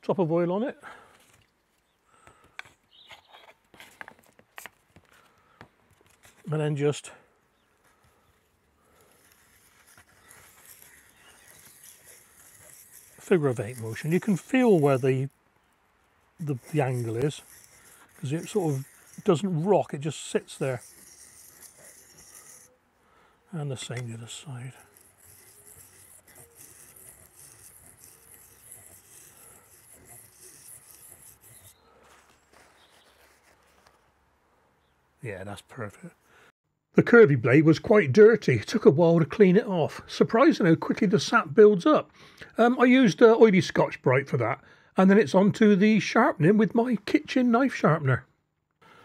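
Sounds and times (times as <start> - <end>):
knife blade scraping on sharpening stone: 9.2 - 15.3, 16.4 - 22.8, 23.6 - 31.8.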